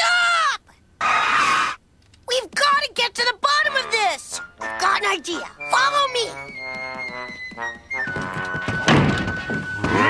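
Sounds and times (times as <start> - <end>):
cartoon underscore music: 3.5 - 10.0
door slamming shut: 8.6 - 10.0.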